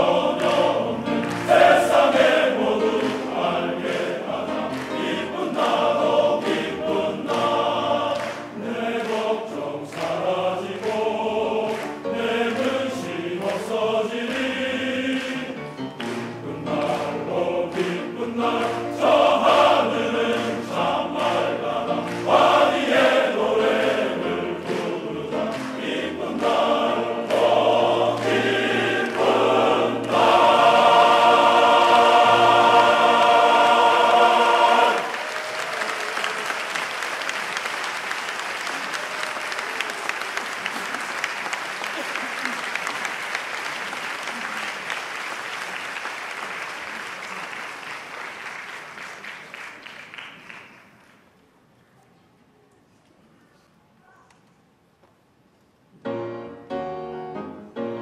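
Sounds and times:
men's choir singing in harmony: 0:00.0 - 0:35.4.

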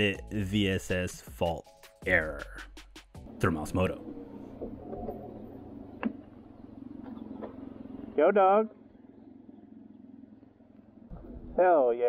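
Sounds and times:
engine idling: 0:02.4 - 0:12.0.

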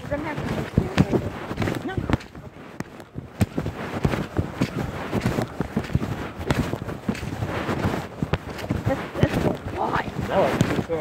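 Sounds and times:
knocks and bumps on microphone: 0:00.0 - 0:11.0
wind on microphone: 0:00.0 - 0:11.0.

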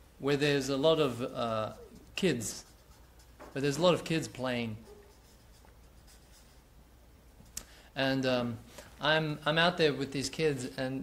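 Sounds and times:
marker scratching on paper: 0:01.6 - 0:06.7.

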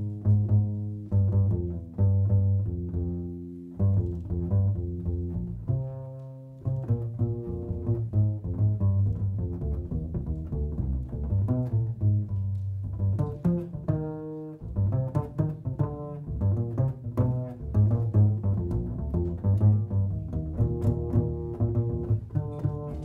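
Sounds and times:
plucked double bass solo: 0:00.0 - 0:23.0.

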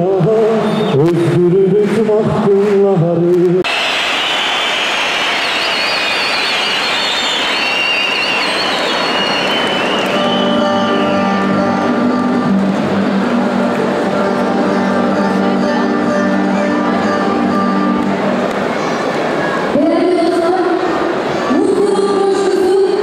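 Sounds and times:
man singing: 0:00.0 - 0:03.6
crowd cheering: 0:00.4 - 0:22.9
high wavering cries: 0:05.5 - 0:12.6
acoustic guitar: 0:10.1 - 0:18.5.

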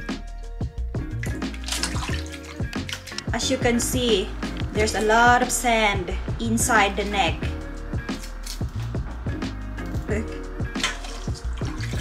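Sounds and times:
music with a regular beat: 0:00.0 - 0:06.8, 0:07.4 - 0:12.0
water sloshing and splashing: 0:01.1 - 0:05.2, 0:10.7 - 0:12.0.

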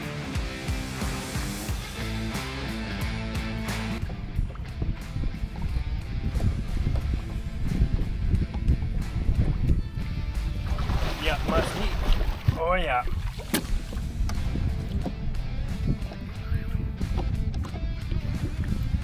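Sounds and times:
background music: 0:00.0 - 0:19.0
water around boat: 0:00.0 - 0:19.0
wind on microphone: 0:04.0 - 0:19.0.

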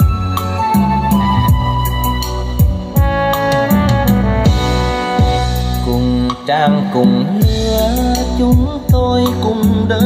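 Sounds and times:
song over loudspeakers: 0:00.0 - 0:10.0
drum beat: 0:02.6 - 0:05.7, 0:06.5 - 0:09.8
person singing: 0:05.7 - 0:10.0.

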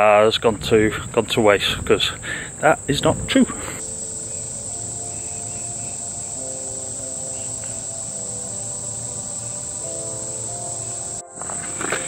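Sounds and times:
insect chorus drone: 0:00.0 - 0:12.0
soft background music chords: 0:03.6 - 0:12.0.

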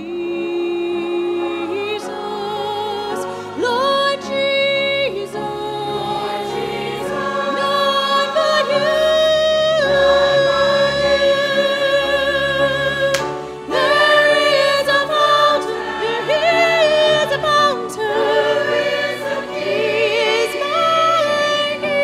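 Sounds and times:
choir singing a hymn: 0:00.0 - 0:22.0.

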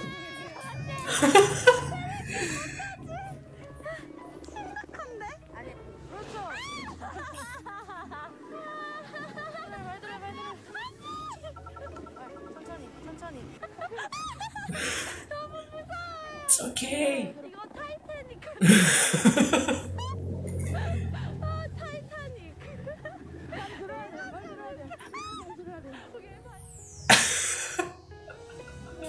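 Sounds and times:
background music: 0:00.0 - 0:29.0
woman squealing in fright: 0:25.0 - 0:25.6.

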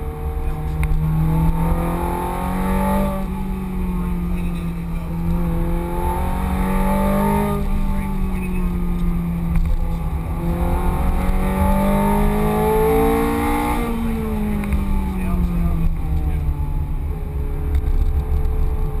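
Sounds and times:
car engine revving: 0:00.0 - 0:19.0
road and wind rumble: 0:00.0 - 0:19.0.

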